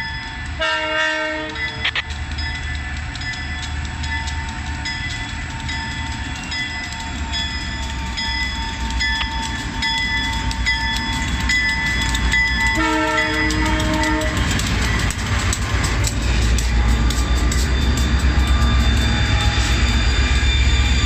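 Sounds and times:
diesel locomotive engine rumble: 0.0s - 21.0s
train air horn: 0.6s - 1.8s, 12.8s - 14.6s.

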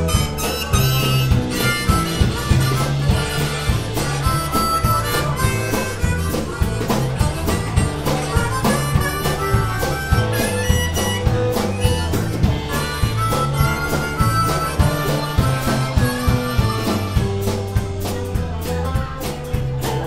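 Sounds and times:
harmonica: 0.0s - 19.7s
bass guitar: 0.0s - 20.0s
drums keeping a steady beat: 0.0s - 20.0s.

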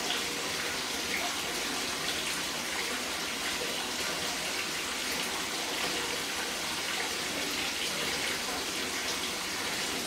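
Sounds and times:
running water filling bath: 0.0s - 10.0s.

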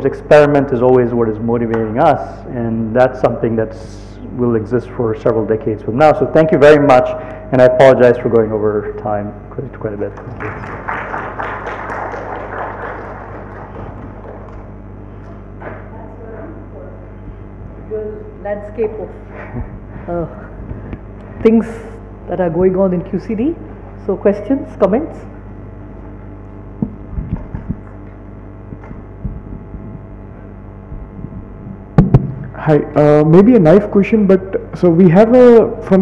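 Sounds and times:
low electrical hum: 0.0s - 36.0s
audience applause: 10.2s - 14.7s.

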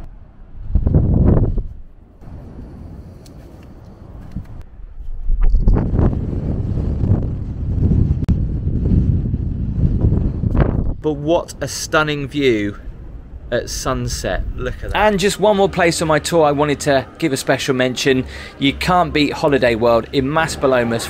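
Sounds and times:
wind gusting on microphone: 0.0s - 19.0s.

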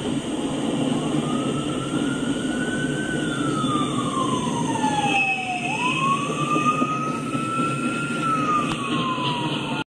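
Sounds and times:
freight train cars rumbling: 0.0s - 9.8s
high wailing tone: 1.2s - 9.8s.

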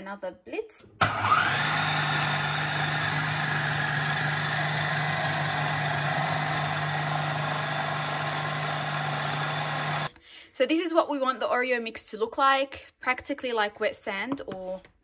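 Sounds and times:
food processor motor whirring: 1.0s - 10.1s.

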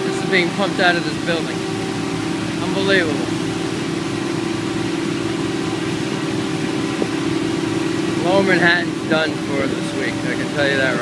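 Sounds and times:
pump engine droning: 0.0s - 11.0s
water gushing and splashing: 0.0s - 11.0s.

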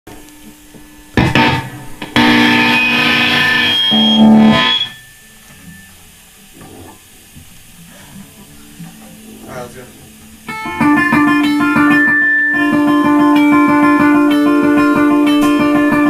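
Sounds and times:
distorted electric guitar chords: 0.1s - 16.0s.

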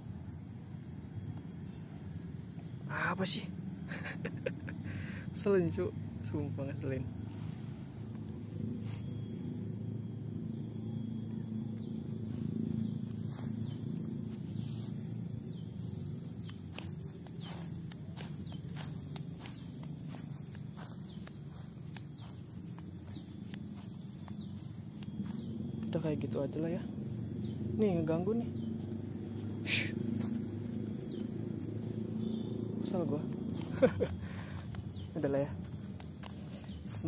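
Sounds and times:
low outdoor rumble: 0.0s - 37.0s
footsteps on grass: 7.0s - 9.8s, 10.4s - 37.0s
bird chirps: 8.8s - 37.0s.

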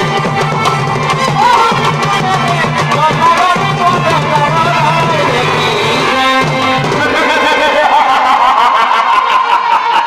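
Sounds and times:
quick steady drumbeats: 0.0s - 8.4s
reed wind instrument melody: 0.0s - 10.0s.

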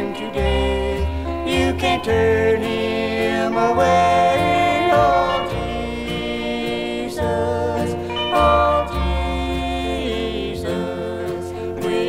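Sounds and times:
instrumental backing: 0.0s - 12.0s
man and woman singing in harmony: 0.0s - 12.0s.

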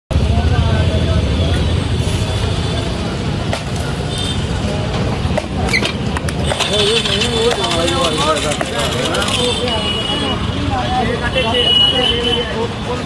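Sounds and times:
road traffic rumble: 0.1s - 13.0s.

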